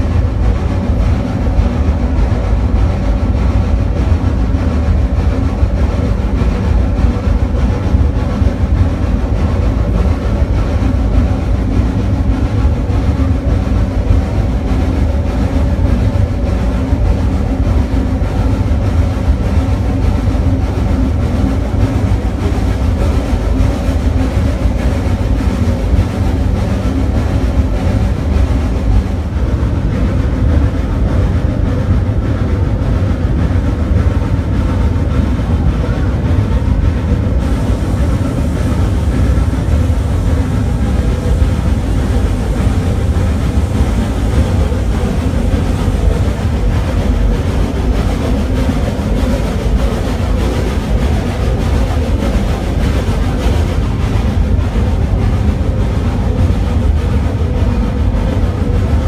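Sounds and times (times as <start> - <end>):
steam locomotive low rumble: 0.0 - 59.0.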